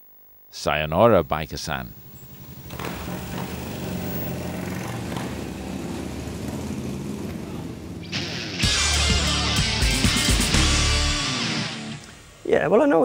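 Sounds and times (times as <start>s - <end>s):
street traffic: 1.8s - 10.2s
motorcycle engine running: 2.4s - 11.1s.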